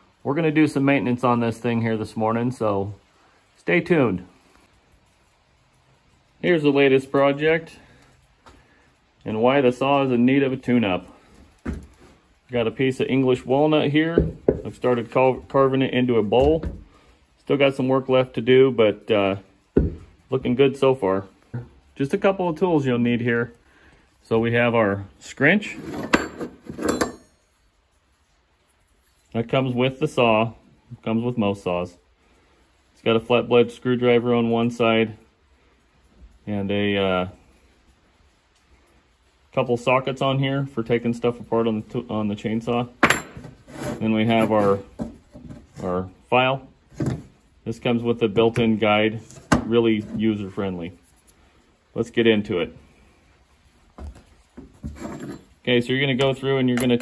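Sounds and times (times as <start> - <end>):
dull thump: 14.1 - 14.7, 19.8 - 20.1
handling knocks on wooden bench: 14.1 - 14.7, 19.8 - 20.1
metal wrench clinking on bench: 25.8 - 27.5, 43.0 - 43.6
short metallic ring: 26.0 - 27.6.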